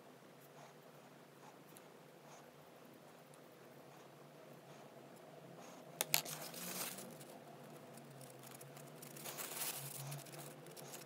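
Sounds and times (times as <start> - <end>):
soft rustling handling noise: 5.6 - 11.0.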